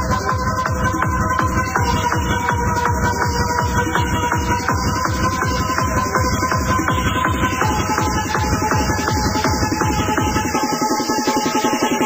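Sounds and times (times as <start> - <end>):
fast techno music: 0.0 - 12.0
percussion ticks: 0.0 - 12.0
rapid low beat: 0.0 - 12.0.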